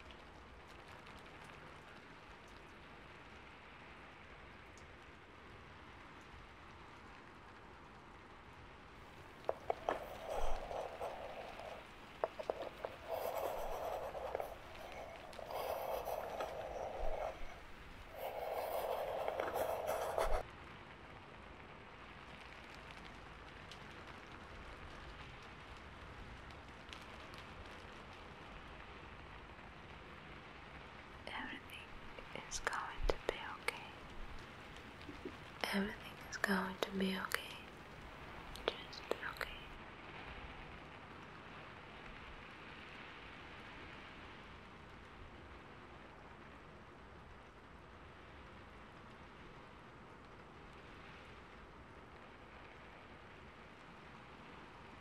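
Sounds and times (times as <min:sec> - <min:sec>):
woman whispering: 0:09.5 - 0:20.4, 0:31.3 - 0:34.1, 0:35.1 - 0:37.7, 0:38.6 - 0:39.8.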